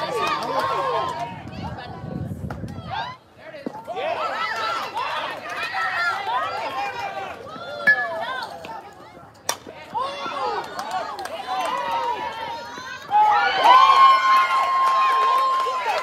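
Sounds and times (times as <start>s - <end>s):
bat hitting softball: 7.8s - 8.7s.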